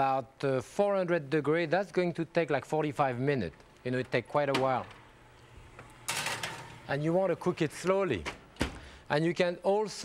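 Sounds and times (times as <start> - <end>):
oven door scraping rattle: 6.0 - 6.9.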